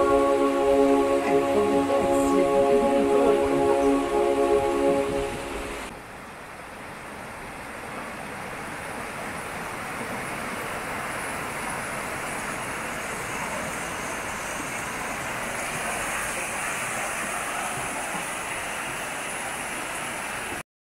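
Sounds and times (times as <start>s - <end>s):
river water flowing: 0.0s - 5.9s.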